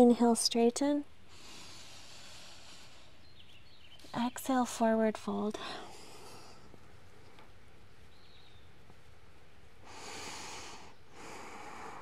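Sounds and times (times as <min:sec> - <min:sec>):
deep breath through the nose: 0:01.3 - 0:03.2, 0:09.8 - 0:12.0.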